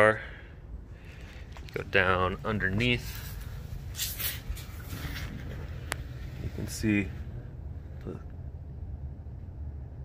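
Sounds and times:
steady low rumble: 0.0s - 10.0s
phone rustling and brushing: 2.9s - 6.7s.

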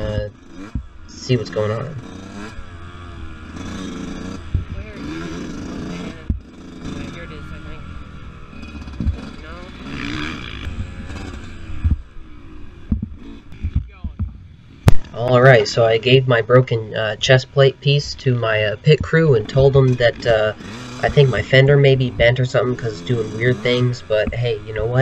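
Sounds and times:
dirt bike engine revving: 0.0s - 25.0s
knocks: 12.9s - 15.1s.

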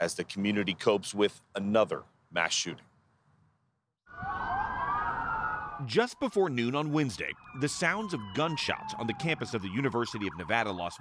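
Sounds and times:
police sirens wailing: 4.1s - 11.0s.

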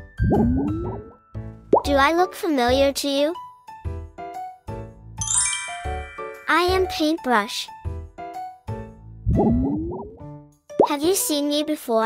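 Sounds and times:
light children's music: 0.0s - 12.0s
bouncy plopping pitch swoops: 0.2s - 1.2s, 9.3s - 10.2s.

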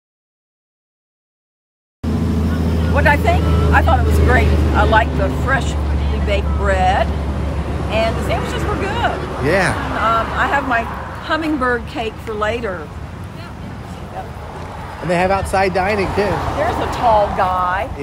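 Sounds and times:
vehicle engine idling: 2.1s - 18.0s
voices talking: 2.1s - 18.0s.

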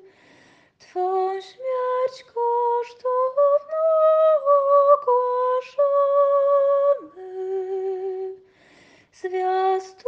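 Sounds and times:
woman singing a hymn: 0.8s - 8.4s, 9.2s - 10.0s.

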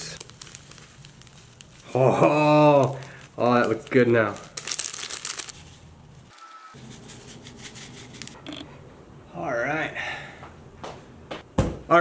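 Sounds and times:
packet rustling while shaken: 0.2s - 2.0s, 2.7s - 5.8s.

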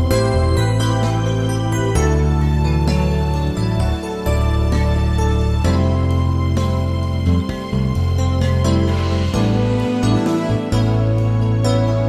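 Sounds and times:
bass line: 0.0s - 12.0s
instrumental band backing track: 0.0s - 12.0s.

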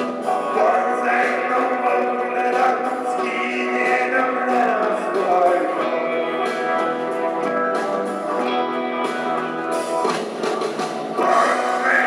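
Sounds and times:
crowd singing together: 0.0s - 8.7s, 11.1s - 12.0s
crowd noise: 0.0s - 12.0s
live rock band: 0.0s - 12.0s.

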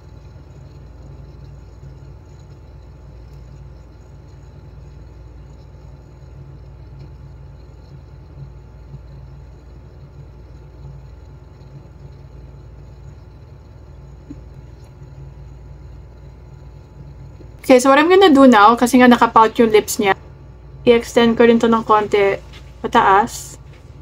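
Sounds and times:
low background rumble: 0.0s - 24.0s.

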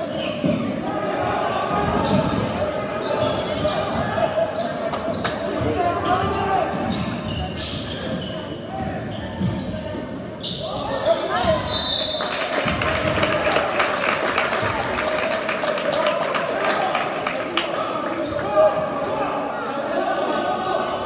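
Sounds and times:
spectators chatter: 0.0s - 21.0s
referee's whistle: 10.4s - 12.5s.

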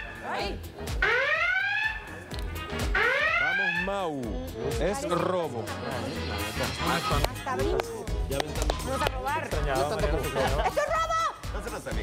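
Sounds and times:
background music: 0.0s - 12.0s
swooping siren alarm effect: 1.0s - 2.2s, 2.8s - 4.0s.

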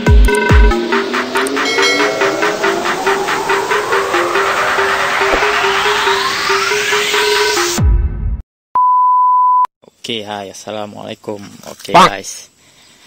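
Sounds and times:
rising whooshing sweep: 0.7s - 7.8s
synth figure: 0.8s - 7.5s.

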